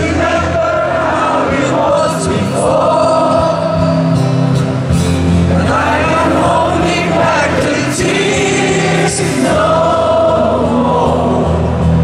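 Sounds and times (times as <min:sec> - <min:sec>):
acoustic guitar ballad with singing: 0:00.0 - 0:12.0.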